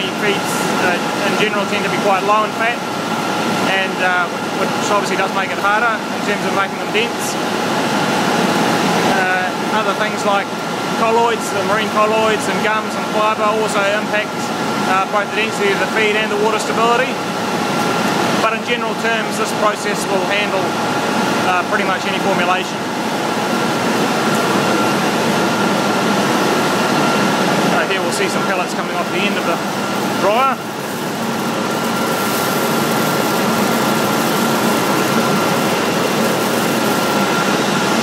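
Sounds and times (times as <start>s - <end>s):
man talking: 0.0s - 2.8s, 3.6s - 7.4s, 9.1s - 17.2s, 18.4s - 20.8s, 21.4s - 22.8s, 27.7s - 29.6s, 30.2s - 30.7s
industrial machinery running: 0.0s - 38.0s
thin steady whine: 0.0s - 38.0s.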